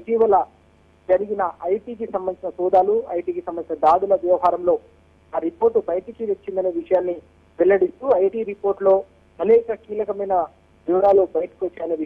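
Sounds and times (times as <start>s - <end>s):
man speaking over telephone: 5.4s - 12.0s.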